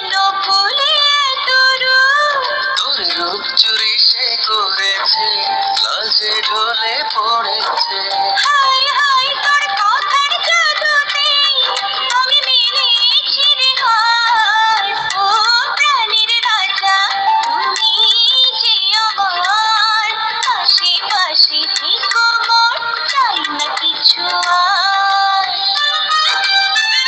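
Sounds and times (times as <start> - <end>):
recorded song with sliding melody: 0.0 - 27.0.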